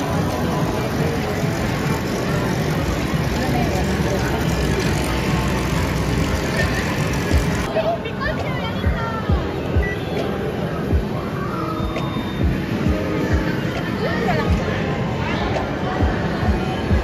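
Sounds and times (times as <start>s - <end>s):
game machine noise: 0.0s - 7.7s
voices: 0.0s - 17.0s.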